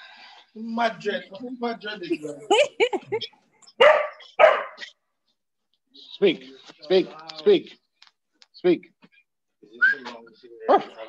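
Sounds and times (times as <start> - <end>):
dog barking: 3.8 - 4.9, 10.7 - 11.0.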